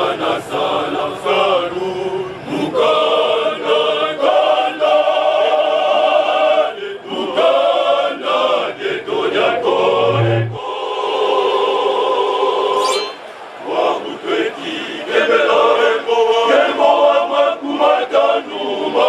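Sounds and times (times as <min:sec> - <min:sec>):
men's choir singing: 0:00.0 - 0:12.8, 0:13.6 - 0:19.0.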